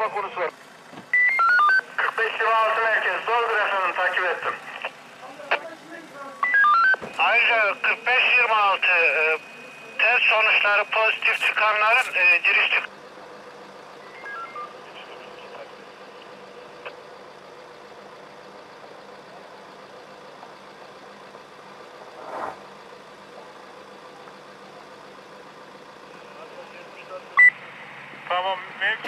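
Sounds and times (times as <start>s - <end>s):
radio low hum: 0.0s - 0.6s, 1.3s - 29.0s
burst of radio noise: 10.0s - 12.9s
sharp radio click: 10.6s - 12.9s
short falling beeps: 14.0s - 14.8s.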